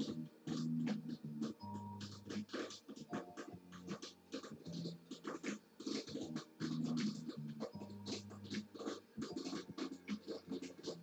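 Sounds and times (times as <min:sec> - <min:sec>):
scratching and rustling strokes: 0:00.0 - 0:11.0.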